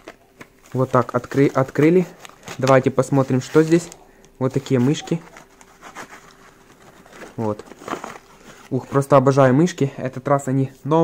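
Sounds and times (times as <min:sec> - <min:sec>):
cardboard box rustling: 0:04.6 - 0:09.2.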